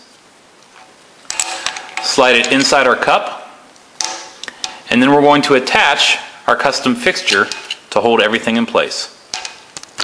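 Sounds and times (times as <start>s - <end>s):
small parts clicking on a bench: 1.3s - 2.6s, 4.0s - 4.8s, 9.3s - 10.0s.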